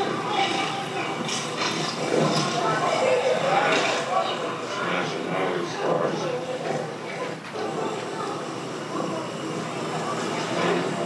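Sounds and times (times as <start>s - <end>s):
indistinct voices over speakers: 0.0s - 11.0s.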